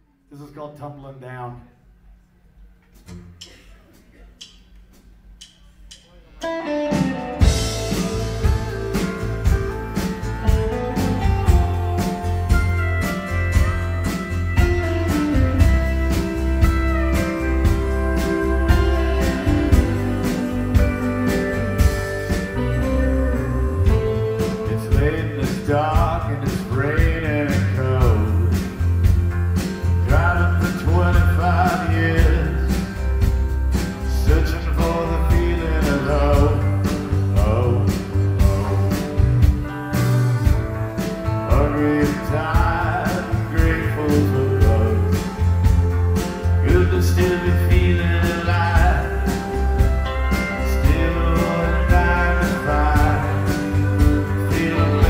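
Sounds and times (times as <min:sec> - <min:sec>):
live country band playing: 0:06.4 - 0:55.0
man singing lead: 0:13.6 - 0:29.0, 0:30.0 - 0:32.9, 0:34.0 - 0:39.4, 0:41.0 - 0:55.0.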